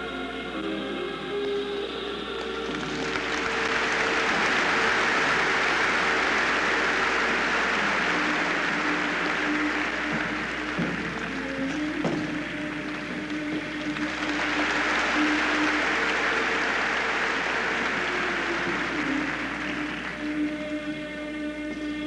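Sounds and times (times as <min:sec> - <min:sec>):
background music with held notes: 0:00.0 - 0:22.0
audience applauding: 0:02.4 - 0:20.7.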